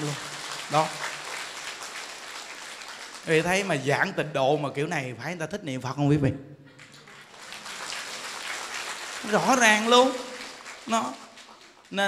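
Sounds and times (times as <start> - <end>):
audience applauding: 0.0 - 4.8, 6.8 - 12.0.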